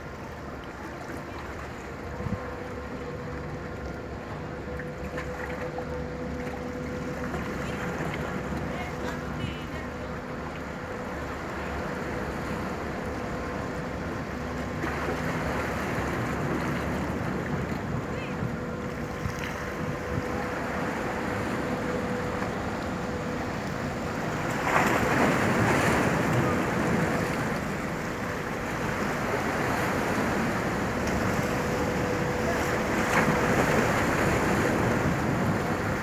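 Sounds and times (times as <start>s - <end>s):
churning water rushing: 0.0s - 36.0s
ferry engine hum: 0.0s - 36.0s.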